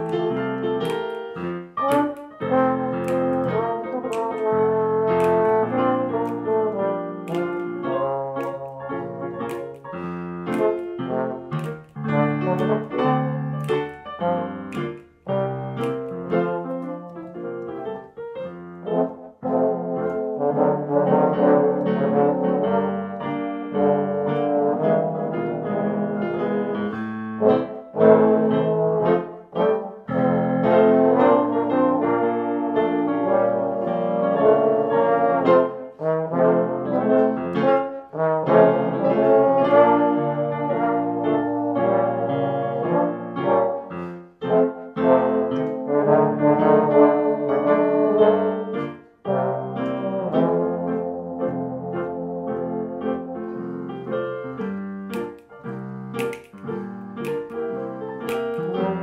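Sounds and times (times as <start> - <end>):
trombones playing swing in harmony: 0.0 - 17.4, 18.4 - 54.2, 57.2 - 59.0
piano chords: 0.0 - 59.0.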